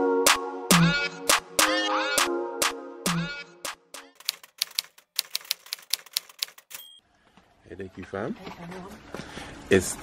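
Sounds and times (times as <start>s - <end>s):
typewriter key clacks: 4.2s - 6.9s
typewriter bell ding: 6.7s - 7.0s.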